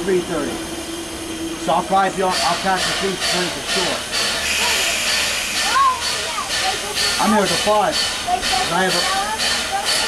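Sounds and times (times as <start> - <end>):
steam locomotive hissing: 0.0 - 10.0.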